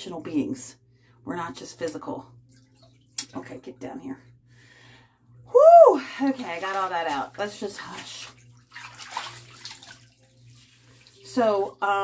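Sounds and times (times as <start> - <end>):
bathwater splashing and trickling: 1.8 - 3.8, 6.0 - 12.0.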